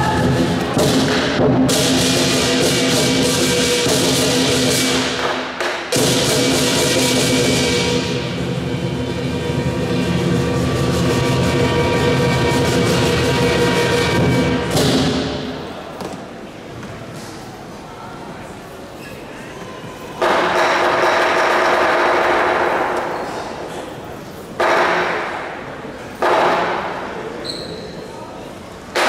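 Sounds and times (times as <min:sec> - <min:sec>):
drum beats: 0:00.0 - 0:15.2
cymbals ringing: 0:05.9 - 0:15.7.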